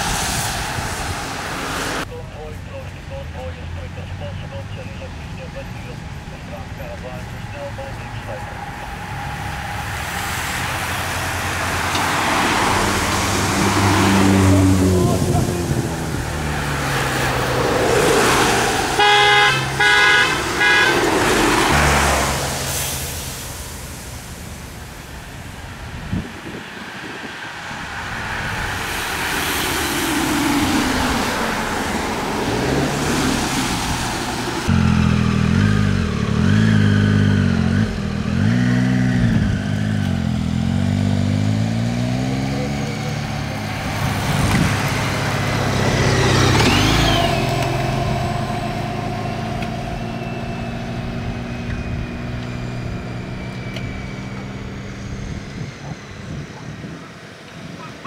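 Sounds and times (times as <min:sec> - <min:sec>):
low engine hum: 0:00.0 - 0:57.9
road noise of passing vehicles: 0:00.0 - 0:58.0.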